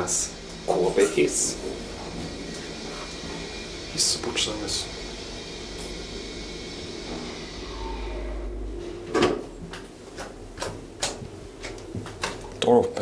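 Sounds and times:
lift car humming: 0.0s - 12.0s.

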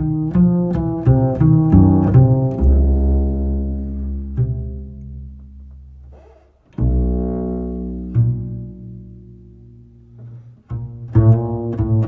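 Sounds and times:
double bass plucked notes: 0.0s - 12.0s.

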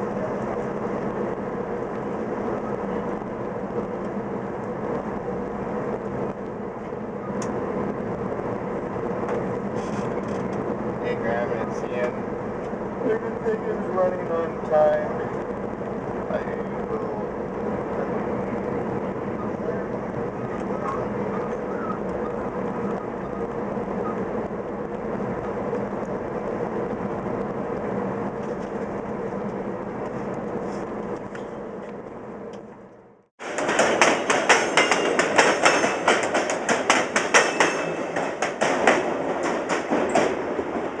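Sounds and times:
train rumble inside coach: 0.0s - 41.0s.

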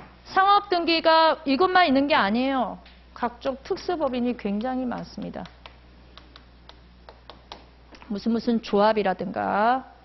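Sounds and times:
chalk tapping on chalkboard: 4.6s - 7.7s.

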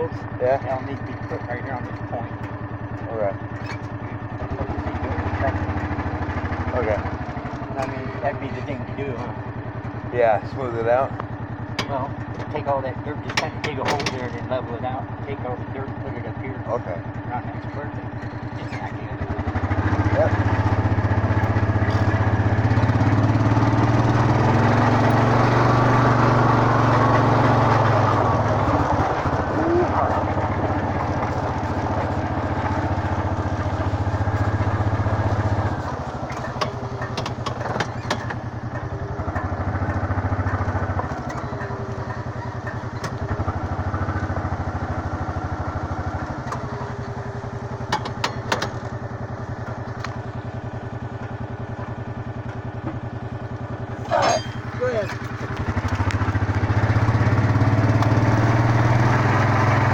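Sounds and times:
vehicle engine running: 0.0s - 59.9s.

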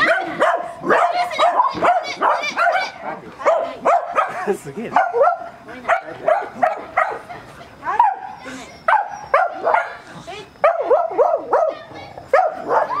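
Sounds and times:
small dog barking: 0.0s - 7.3s, 7.9s - 10.0s, 10.6s - 13.0s.

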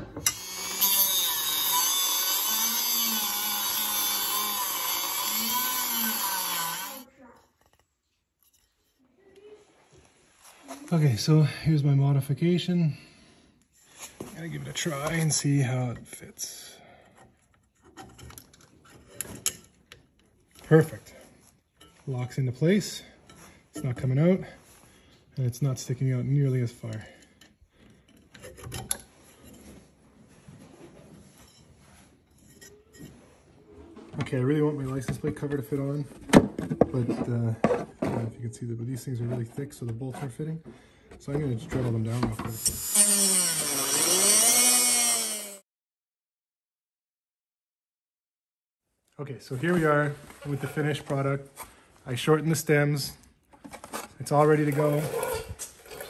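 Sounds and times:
rotary tool grinding bolt: 0.1s - 7.0s, 42.5s - 45.6s, 54.6s - 56.0s.

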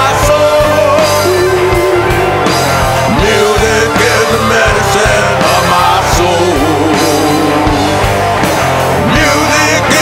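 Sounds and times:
blues-rock band playing: 0.0s - 10.0s.

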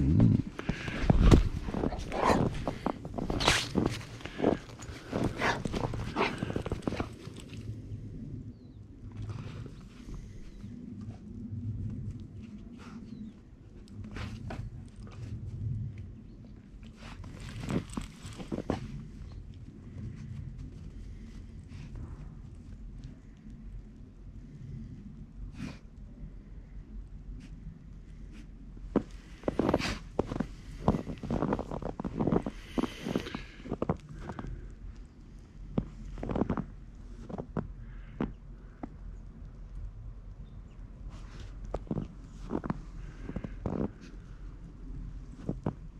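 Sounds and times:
footsteps crunching in snow: 0.2s - 7.6s, 17.0s - 19.1s, 29.0s - 34.4s.

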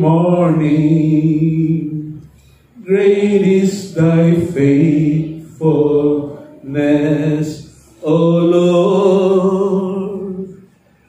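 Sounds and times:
man singing unaccompanied: 0.0s - 2.2s, 2.8s - 10.7s.

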